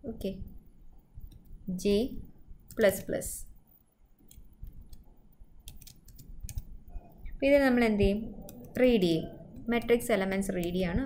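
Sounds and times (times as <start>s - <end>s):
computer keyboard typing: 4.2s - 6.8s, 8.4s - 10.8s.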